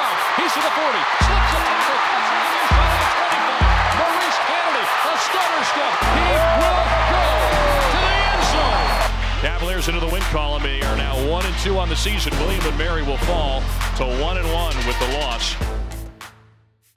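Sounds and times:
stadium crowd cheering: 0.0s - 15.6s
announcer calling excitedly: 0.4s - 9.1s
music with heavy bass: 1.2s - 4.1s, 6.0s - 16.3s.

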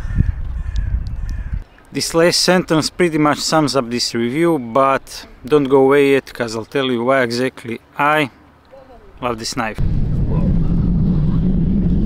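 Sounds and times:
wind rumble on microphone: 0.0s - 1.6s, 9.8s - 12.0s.

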